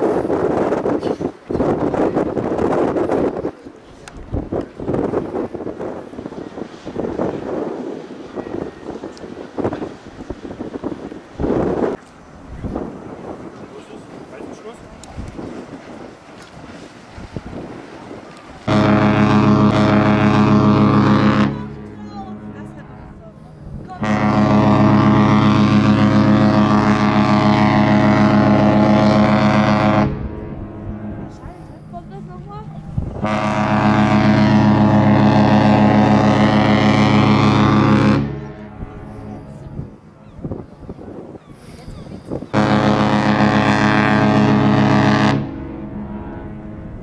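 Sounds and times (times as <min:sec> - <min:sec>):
wind noise: 0:00.0 - 0:21.5, 0:23.0 - 0:47.0
deep ship horn blast: 0:14.4 - 0:40.2, 0:42.3 - 0:47.0.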